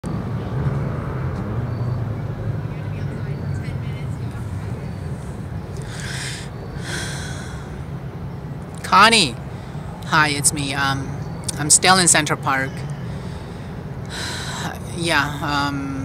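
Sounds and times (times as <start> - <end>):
distant city traffic rumble: 0.0 - 16.0.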